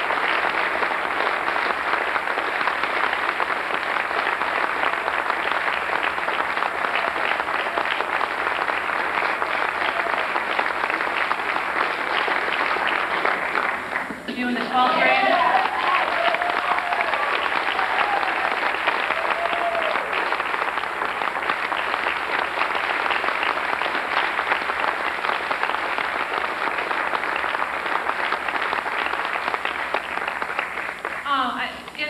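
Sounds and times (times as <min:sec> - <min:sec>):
audience applauding: 0:00.0 - 0:32.0
person speaking: 0:14.2 - 0:15.6.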